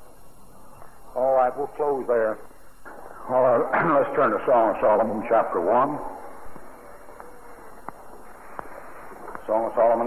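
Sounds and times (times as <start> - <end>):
tape hiss: 0.0 - 10.0.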